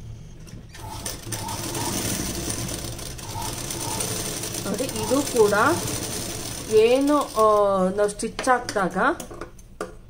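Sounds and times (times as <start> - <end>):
sewing machine stitching: 0.7 - 8.0.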